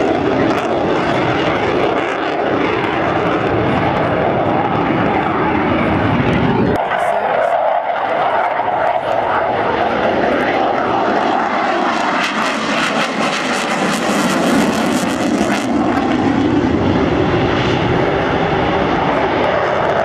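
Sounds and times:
fighter jet engine rushing: 0.0s - 20.0s.

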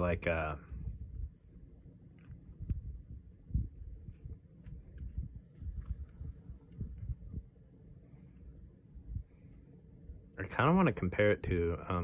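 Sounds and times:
low thumps and rumble: 2.2s - 7.6s.

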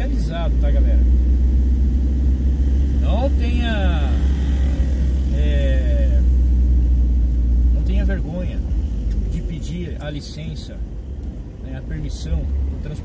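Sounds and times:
van engine and road rumble: 0.0s - 13.0s.

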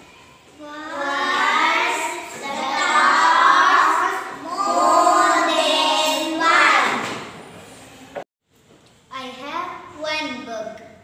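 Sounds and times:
girls singing together: 0.8s - 7.2s.

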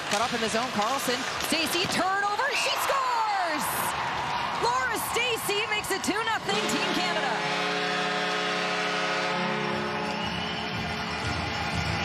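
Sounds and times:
arena goal horn blast: 6.5s - 10.8s.

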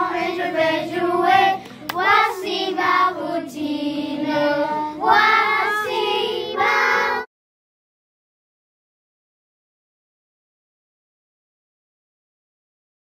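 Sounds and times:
children singing together: 0.0s - 7.3s.

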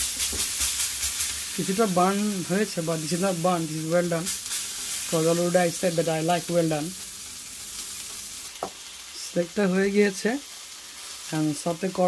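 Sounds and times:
food sizzling on a griddle: 0.0s - 12.0s.

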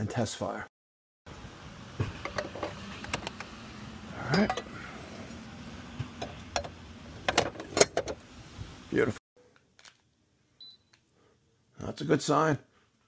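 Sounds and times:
outdoor background hiss: 1.3s - 13.0s.

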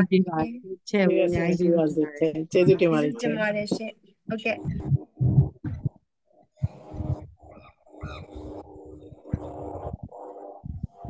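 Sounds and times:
people talking: 0.0s - 5.8s.

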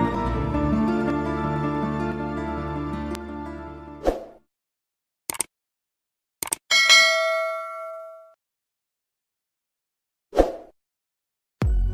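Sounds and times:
short swish: 4.0s - 4.4s, 10.4s - 10.8s
bright metallic notification ding: 6.7s - 8.3s.

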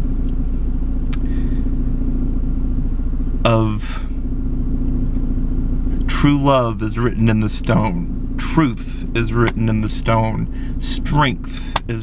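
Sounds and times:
car engine rumble from inside: 0.0s - 12.0s.

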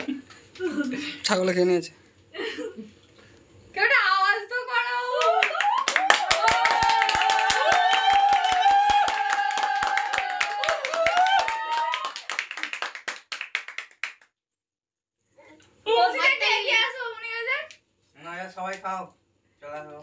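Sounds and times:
people clapping: 5.2s - 14.3s.

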